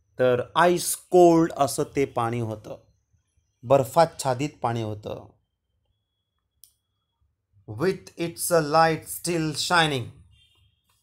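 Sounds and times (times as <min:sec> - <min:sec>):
man speaking: 0:00.1 - 0:02.9, 0:03.6 - 0:05.4, 0:07.7 - 0:10.2.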